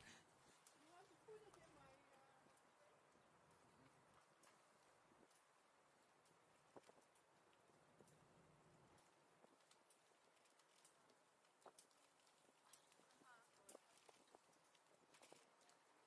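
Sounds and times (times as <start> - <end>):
bicycle rattling and clicking: 8.9 - 15.9.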